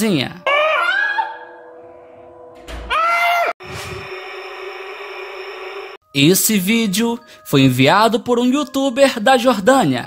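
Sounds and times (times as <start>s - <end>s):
scream-like cry: 0.4s - 1.6s, 2.9s - 3.6s
eerie droning horror music: 0.4s - 6.0s
pitched cry: 0.5s - 1.6s.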